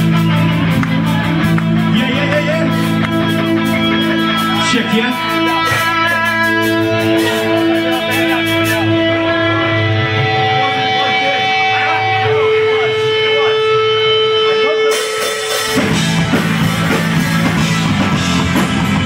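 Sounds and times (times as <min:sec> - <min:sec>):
distorted electric guitars: 0:00.0 - 0:19.0
full band playing: 0:00.0 - 0:19.0.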